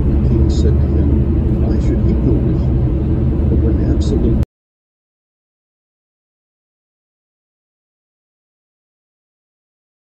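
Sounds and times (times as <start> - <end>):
car driving at highway speed: 0.0 - 4.4.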